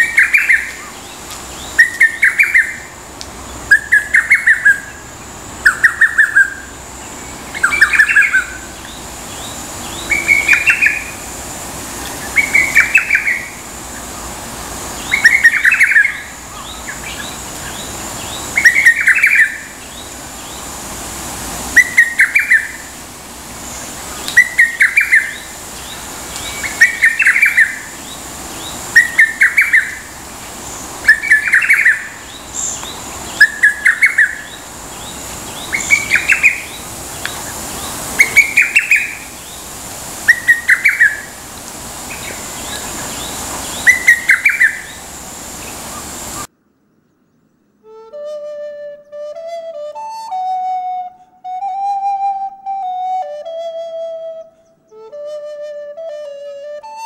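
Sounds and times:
cuckoo singing: 0.0 - 3.0, 3.7 - 11.4, 12.0 - 14.2, 15.0 - 20.7, 21.7 - 23.0, 23.7 - 46.5, 47.8 - 57.0.

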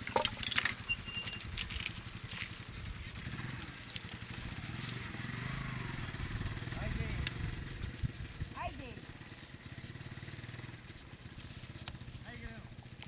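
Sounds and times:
motorcycle engine running: 0.0 - 13.0.

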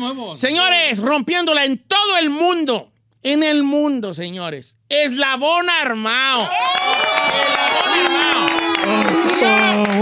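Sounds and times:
crowd cheering: 6.4 - 10.0.

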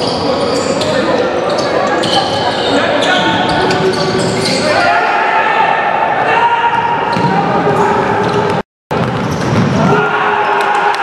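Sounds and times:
players shouting: 4.4 - 8.3, 9.8 - 11.0.

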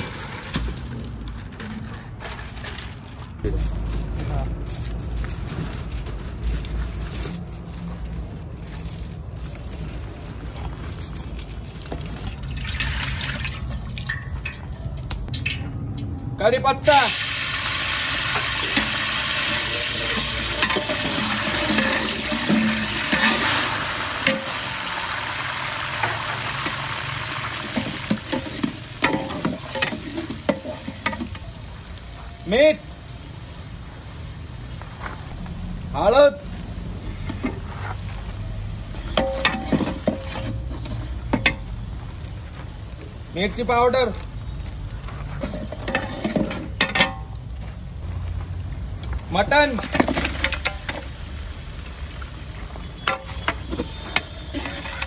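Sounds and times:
onions sizzling in hot oil: 16.9 - 37.4, 49.7 - 55.0
metal ladle scraping pot: 18.3 - 24.7, 27.5 - 31.4, 38.9 - 41.7, 45.4 - 47.4, 52.9 - 55.0.

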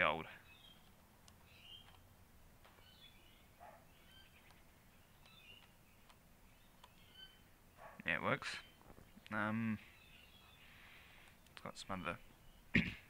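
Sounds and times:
faint bird chirps: 0.0 - 2.1, 2.7 - 12.8
calculator keys clicking: 5.2 - 6.2.

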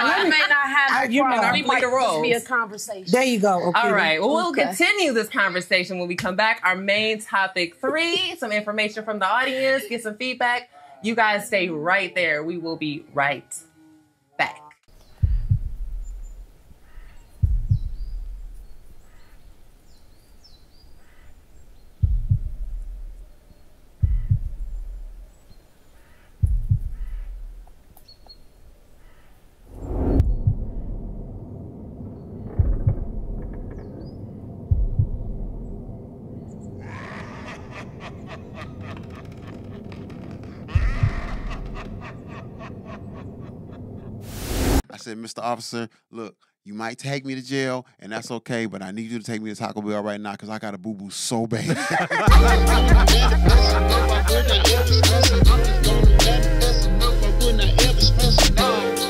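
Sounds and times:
faint bird chirps: 14.9 - 22.6, 23.2 - 27.4
deep booming hits: 15.2 - 19.0, 22.0 - 23.2, 24.0 - 25.3, 26.4 - 27.7, 29.7 - 36.8, 40.7 - 41.9
dark musical drone: 52.3 - 58.6.

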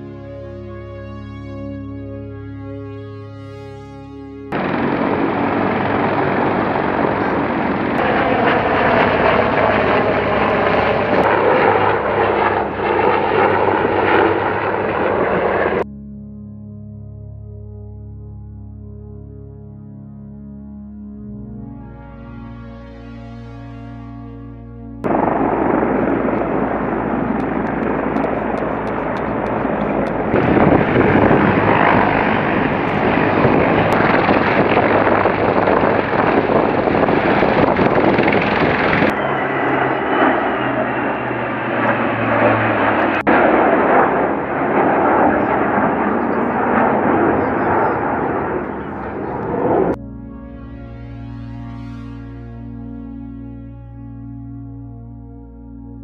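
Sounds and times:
helicopter rotor and turbine noise: 0.0 - 15.9, 21.3 - 56.0.

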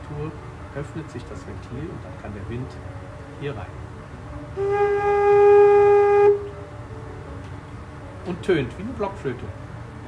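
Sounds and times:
organ pipe blown by mouth: 4.6 - 6.6.

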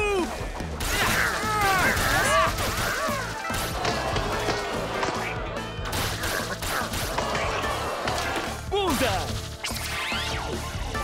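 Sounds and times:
cartoon music: 0.0 - 8.9.

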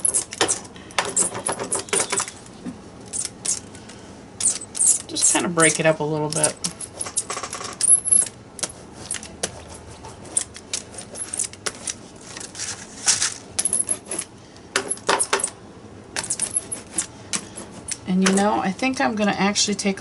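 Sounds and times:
roller crackling on paper: 8.6 - 14.3.

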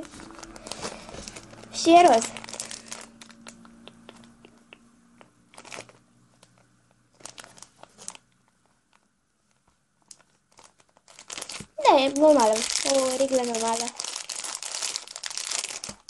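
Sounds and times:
plastic packaging crinkling: 0.0 - 4.0, 5.5 - 16.0.

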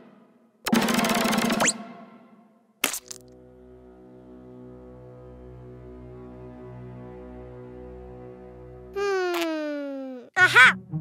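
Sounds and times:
low sustained music chord: 3.3 - 9.0.

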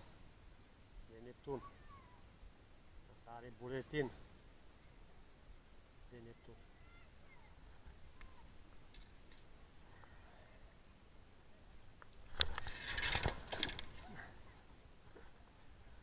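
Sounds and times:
handling clicks and rattles: 12.0 - 14.2.

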